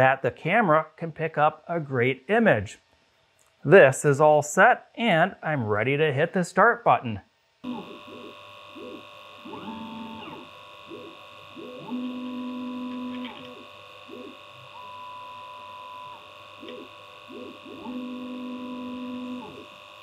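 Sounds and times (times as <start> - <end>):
fans humming: 7.6 - 20.0
stepper motors whining: 7.6 - 20.0.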